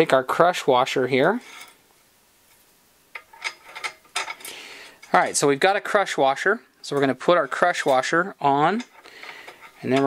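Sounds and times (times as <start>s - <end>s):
metal parts clicking: 3.1s - 5.2s.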